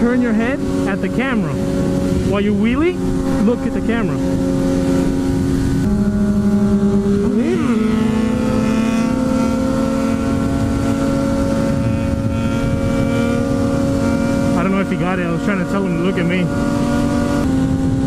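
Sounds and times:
motorcycle engines running: 0:00.0 - 0:18.0
wind rumble on microphone: 0:00.0 - 0:18.0.

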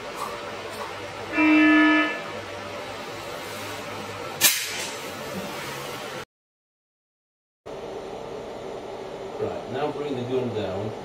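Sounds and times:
sharp shot snap: 0:04.4 - 0:05.0.

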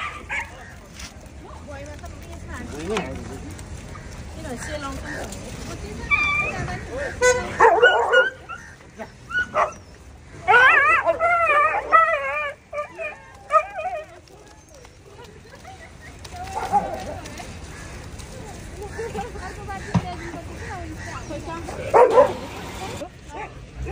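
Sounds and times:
dogs yelping and whining: 0:07.6 - 0:14.9.

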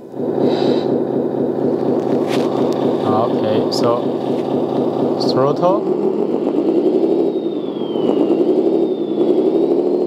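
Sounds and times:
simulated engine from small speaker: 0:00.0 - 0:10.0.

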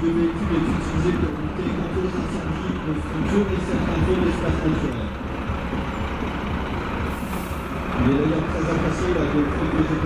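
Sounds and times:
diesel truck driving past: 0:00.0 - 0:10.0.

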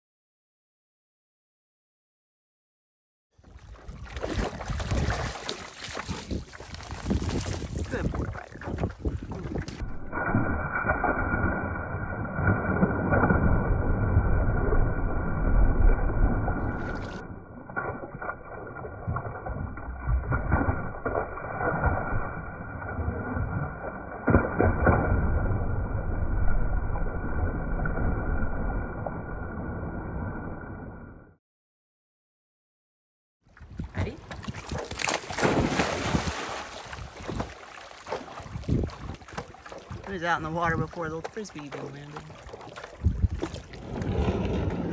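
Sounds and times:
water splashing around swimming dog: 0:03.4 - 0:25.7, 0:33.6 - 0:44.9
water rumbling against microphone: 0:03.4 - 0:31.4, 0:33.5 - 0:44.9.

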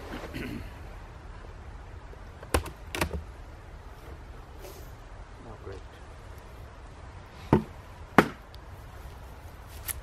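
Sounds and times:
wooden beehive parts knocking: 0:02.4 - 0:03.3.

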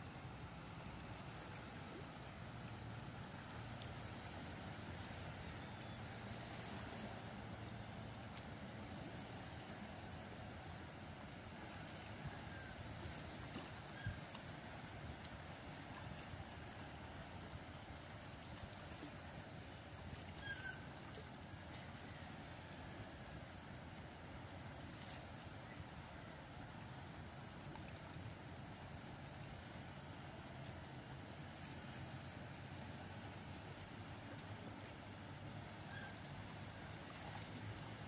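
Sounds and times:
seawater lapping at rocks: 0:00.0 - 0:38.0
wind: 0:00.0 - 0:38.0.

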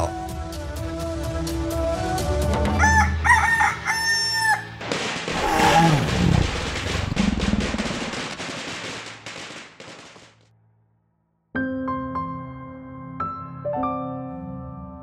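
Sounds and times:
rooster crowing: 0:02.7 - 0:04.7
dinosaur roar sound effect: 0:05.4 - 0:06.5.

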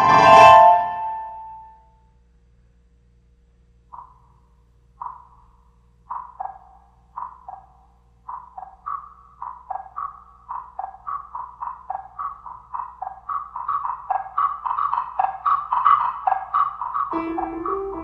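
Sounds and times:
wooden tone blocks struck: 0:17.1 - 0:18.0.

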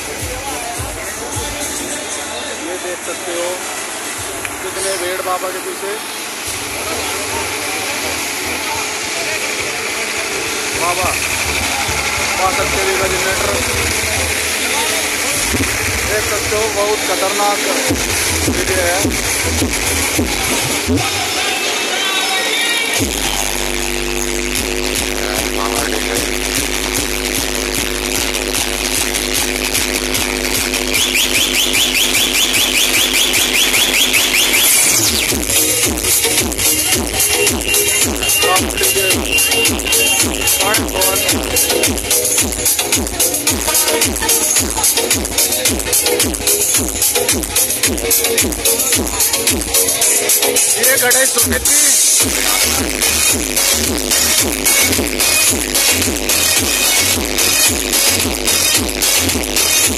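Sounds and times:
loud bass-heavy dj music: 0:00.0 - 0:04.9, 0:06.3 - 0:59.9
crowd voices: 0:00.0 - 0:59.9
tractor engines running: 0:00.9 - 0:21.0
diesel generator running: 0:05.6 - 0:21.8
high siren-like chirp: 0:30.9 - 0:35.4.

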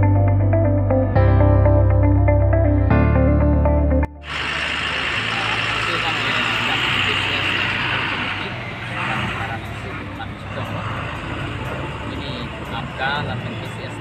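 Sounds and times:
low engine hum: 0:04.2 - 0:14.0
road traffic: 0:04.2 - 0:14.0.

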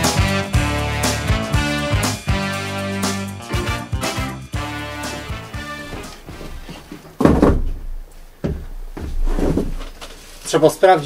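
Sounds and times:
background music: 0:00.0 - 0:06.5
wicker chair thumping on wooden deck: 0:05.9 - 0:09.8.

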